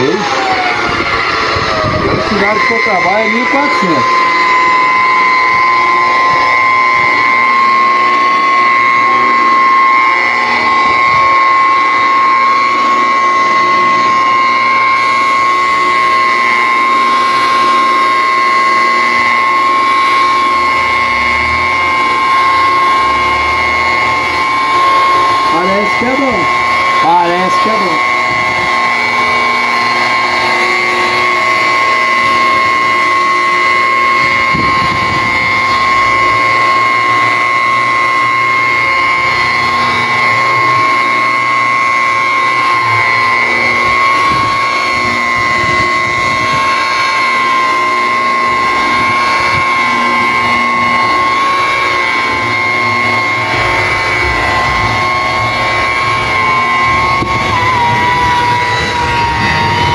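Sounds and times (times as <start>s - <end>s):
electric polisher motor whine: 0.0s - 59.9s.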